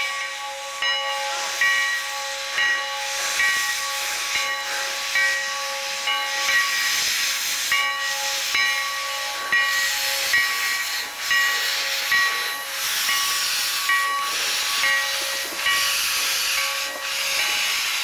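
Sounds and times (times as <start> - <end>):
steam locomotive hissing: 0.0 - 18.0.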